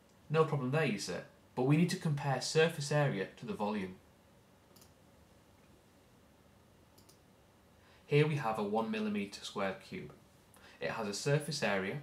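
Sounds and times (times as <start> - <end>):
faint short clicks: 4.7 - 5.0, 7.0 - 7.2.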